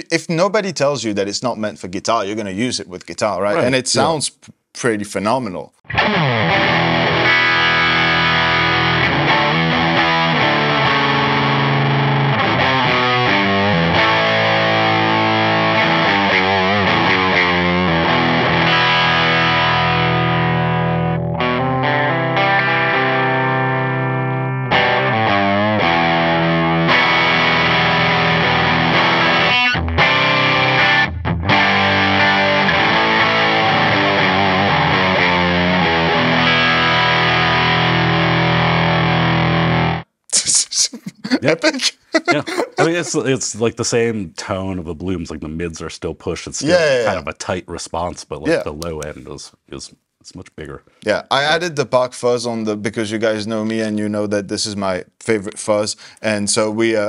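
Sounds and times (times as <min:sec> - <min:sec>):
distorted electric guitar chords: 0:05.9 - 0:40.1.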